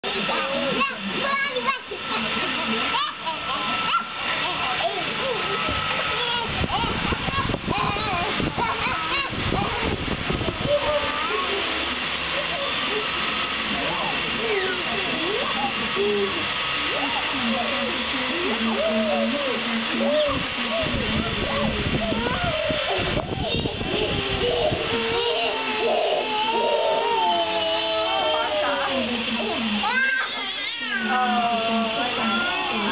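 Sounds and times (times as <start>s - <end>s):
children and baby squealing: 2.9s - 11.8s, 18.7s - 32.9s
young children squealing: 21.6s - 29.0s, 29.8s - 32.9s.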